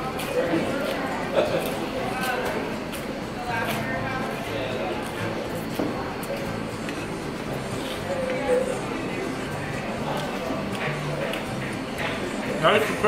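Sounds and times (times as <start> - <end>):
background talking: 0.0 - 13.0.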